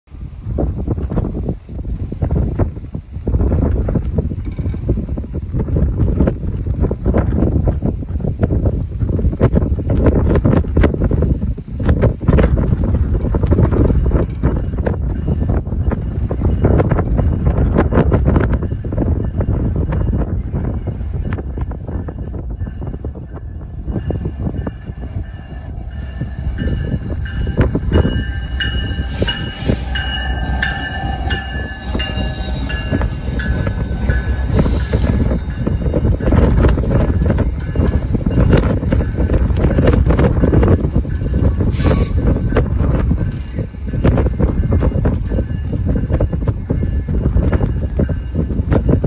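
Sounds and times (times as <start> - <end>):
wind buffeting microphone: 0.0 - 49.0
faint high train tones: 13.7 - 49.0.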